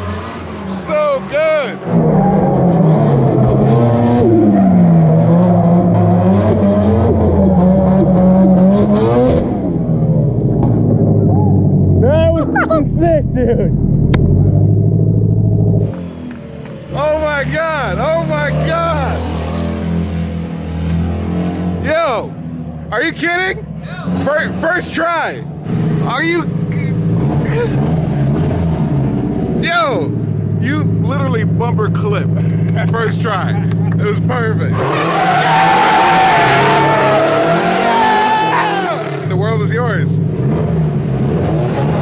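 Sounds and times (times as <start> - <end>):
car engines revving: 0.0 - 42.0
tyres squealing: 34.7 - 39.2.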